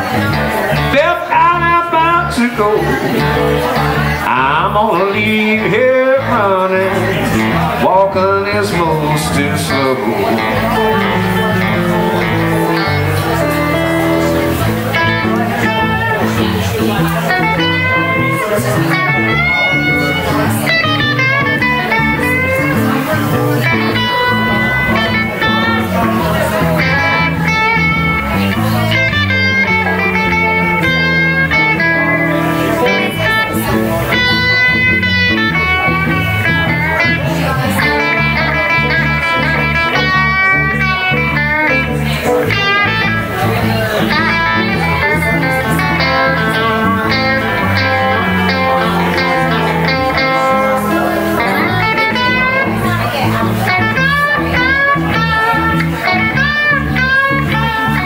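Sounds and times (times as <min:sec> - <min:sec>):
electric bass: 0:00.0 - 0:58.0
electric guitar solo with bent notes: 0:00.0 - 0:58.0
rhythm electric guitar: 0:00.0 - 0:58.0.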